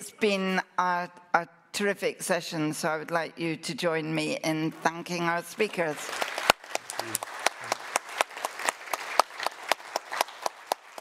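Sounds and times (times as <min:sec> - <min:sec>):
audience applauding: 0:05.9 - 0:11.0.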